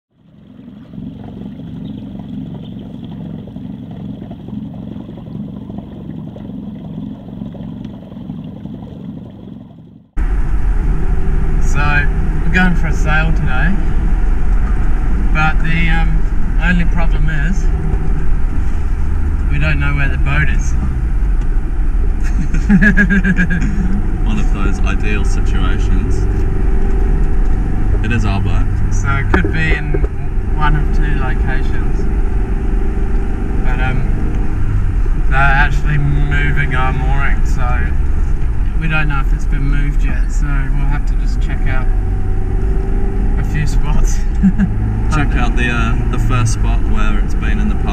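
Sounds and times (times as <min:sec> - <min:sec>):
outboard motor running: 0:00.1 - 0:47.9
road noise inside car: 0:10.0 - 0:47.9
man speaking: 0:23.7 - 0:26.3, 0:28.0 - 0:32.0, 0:43.4 - 0:44.3, 0:45.1 - 0:47.9.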